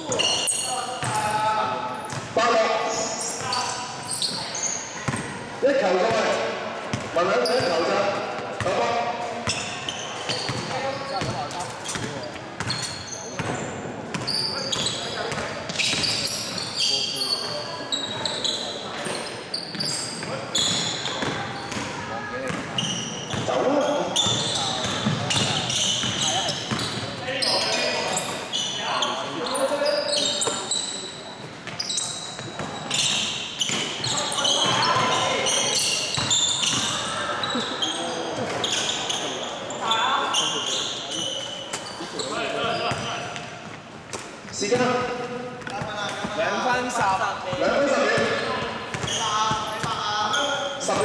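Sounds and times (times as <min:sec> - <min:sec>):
sneakers squeaking: 0:00.0 - 0:51.0.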